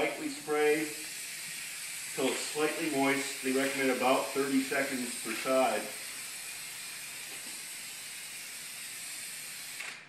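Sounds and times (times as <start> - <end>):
spray hissing onto fabric: 0.0 - 9.8.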